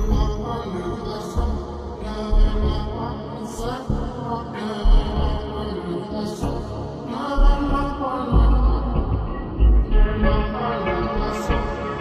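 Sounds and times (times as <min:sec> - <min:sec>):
slowed reverberated pop song: 0:00.0 - 0:12.0.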